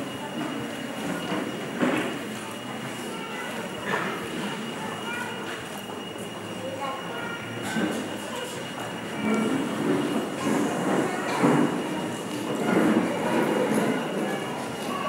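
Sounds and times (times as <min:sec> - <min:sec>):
indistinct voices: 0:00.0 - 0:15.0.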